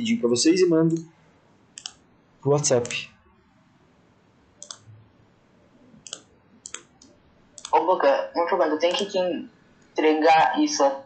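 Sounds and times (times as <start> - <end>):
computer mouse clicks: 1.8 - 2.0, 4.6 - 4.9, 6.0 - 7.8.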